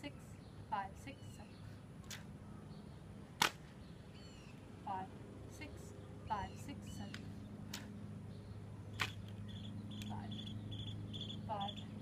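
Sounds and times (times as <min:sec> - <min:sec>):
insects chirping: 0:09.5 - 0:11.9.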